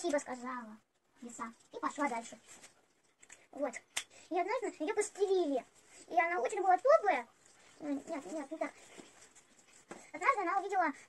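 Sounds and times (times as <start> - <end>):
child speaking: 0.0 - 2.5, 3.5 - 9.0, 9.9 - 11.0.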